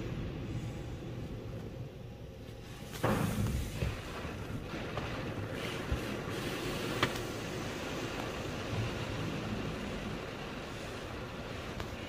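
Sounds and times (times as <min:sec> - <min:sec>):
water spray and rotating brushes: 0:02.6 - 0:12.0.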